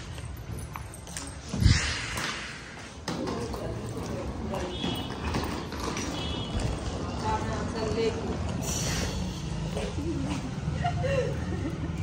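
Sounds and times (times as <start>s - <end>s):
suitcase wheels clattering on pavement: 3.0s - 8.6s.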